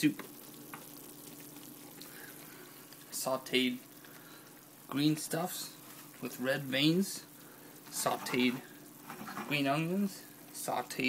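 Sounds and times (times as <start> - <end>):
faint steady hum: 0.0 - 11.0
simmering liquid hissing: 0.0 - 11.0.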